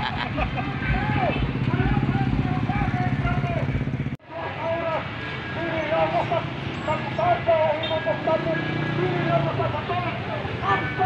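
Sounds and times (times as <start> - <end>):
motorcycle engine running: 0.0 - 4.2
street noise: 0.0 - 11.0
voices: 0.0 - 11.0.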